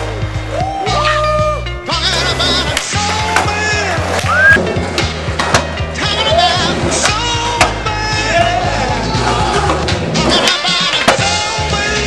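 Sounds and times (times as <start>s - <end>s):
loud background music: 0.0s - 12.0s
skateboard wheels rolling: 2.0s - 12.0s
skateboard clacks and impacts: 2.7s - 5.8s, 6.8s - 11.4s.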